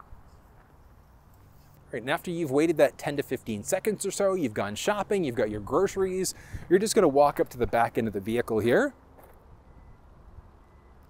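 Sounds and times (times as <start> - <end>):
high-pitched car warning beeping: 9.0 - 11.0.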